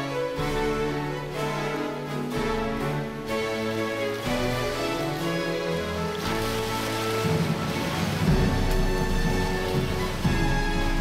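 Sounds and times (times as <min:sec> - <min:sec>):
baroque string ensemble music: 0:00.0 - 0:11.0
person wading through water: 0:03.3 - 0:11.0.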